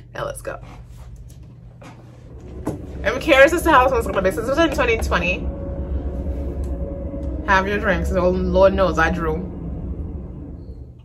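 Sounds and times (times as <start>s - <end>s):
faint low rumble: 0.0s - 11.0s.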